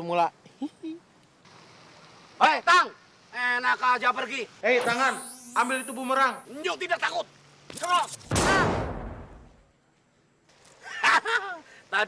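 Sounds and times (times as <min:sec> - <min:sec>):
blast with deep rumble: 0:08.3 - 0:09.7.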